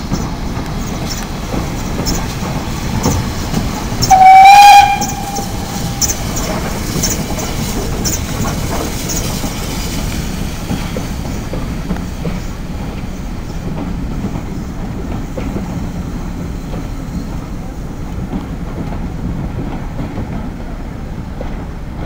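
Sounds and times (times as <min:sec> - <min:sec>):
steam locomotive exhaust beats: 0:00.0 - 0:22.0
train wheels running: 0:00.0 - 0:22.0
steam locomotive whistle: 0:04.0 - 0:06.6.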